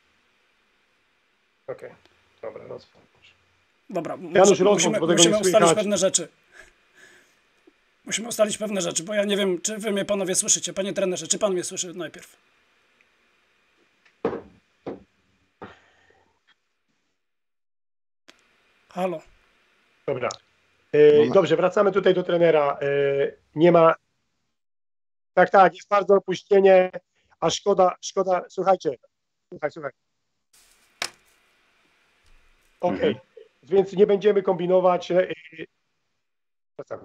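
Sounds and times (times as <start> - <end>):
short knocks: 14.2 - 15.1
faint line hiss: 18.3 - 23.3, 30.6 - 35.7
sharp click: 31.0 - 31.2.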